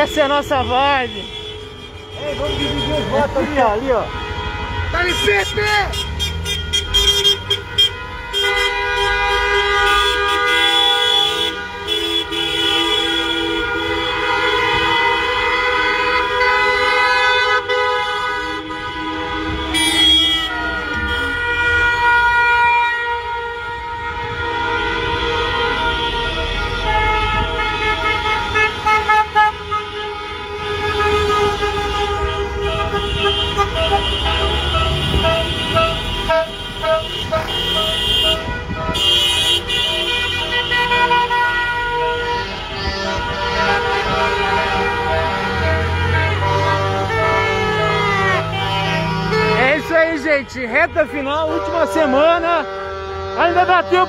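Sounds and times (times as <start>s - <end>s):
car horns honking: 0.0s - 54.0s
car engines running: 25.7s - 54.0s.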